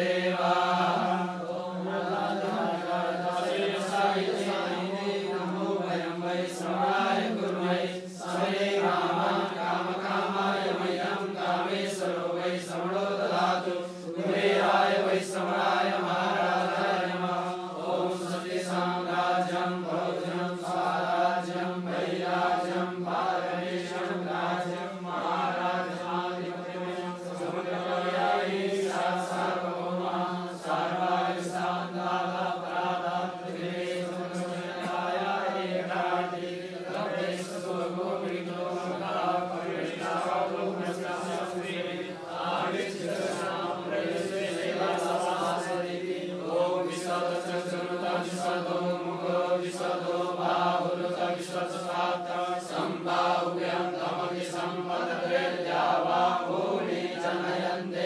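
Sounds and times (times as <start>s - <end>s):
mantras chanted on low pitch: 0.0s - 58.0s.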